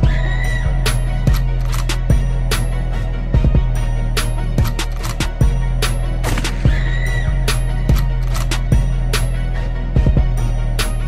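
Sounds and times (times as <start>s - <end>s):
deep steady bass: 0.0s - 11.0s
kick drum and hi-hat beat: 0.0s - 11.0s.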